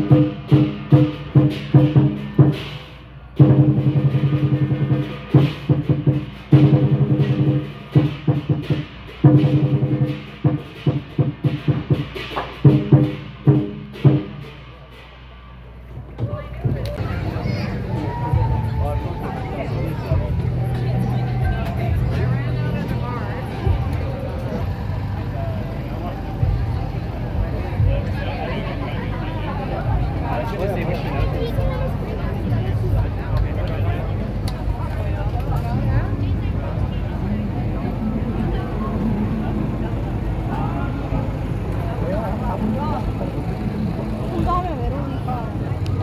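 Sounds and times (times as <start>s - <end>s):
crowd chatter: 0.0s - 46.0s
large drum beaten in rolls: 0.0s - 46.0s.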